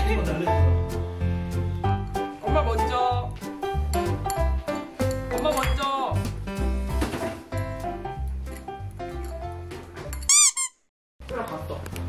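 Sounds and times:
light background music: 0.0 - 10.5, 11.2 - 12.0
high squeaks: 10.3 - 10.9.

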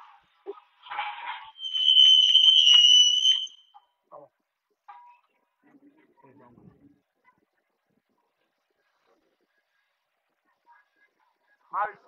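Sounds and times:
shrill high-pitched tone: 1.5 - 3.8.

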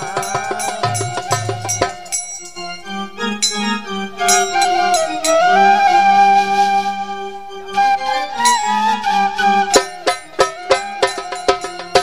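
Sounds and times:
sharp percussion strikes: 0.0 - 5.6, 8.4 - 8.9, 9.7 - 12.0
flute melody: 0.0 - 12.0.

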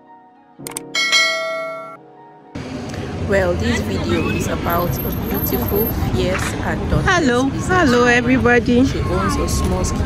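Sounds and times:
street background noise: 0.6 - 10.0
bright bell-like chime: 1.0 - 2.0.

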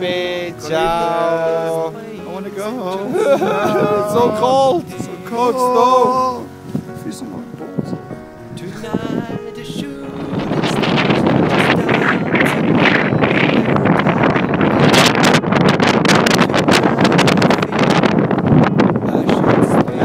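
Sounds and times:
person singing: 0.0 - 6.6, 7.7 - 15.4, 16.2 - 20.0
wind buffeting microphone: 0.0 - 20.0.

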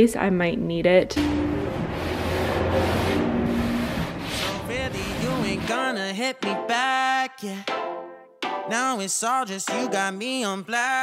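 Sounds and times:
background music: 1.2 - 11.0.

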